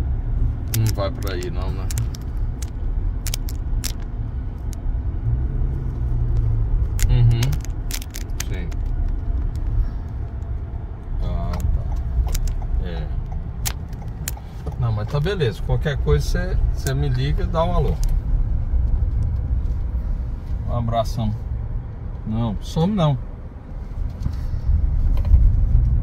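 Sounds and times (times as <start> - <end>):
car interior rumble: 0.0 - 26.0
sharp clicks: 0.7 - 4.8, 6.9 - 14.8.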